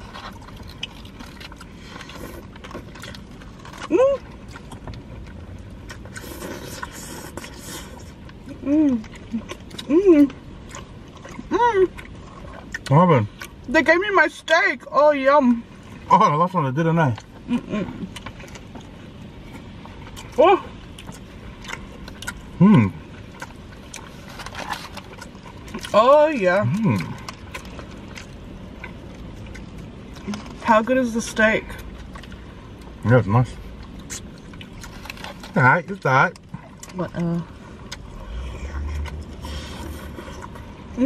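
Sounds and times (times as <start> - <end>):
chewing crunches and mouth clicks: 0.0 - 14.6, 15.7 - 41.0
low steady rumble: 0.0 - 41.0.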